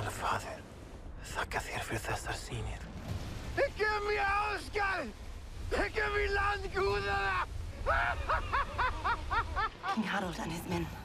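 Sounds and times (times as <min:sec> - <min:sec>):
man laughing: 0:07.8 - 0:09.9.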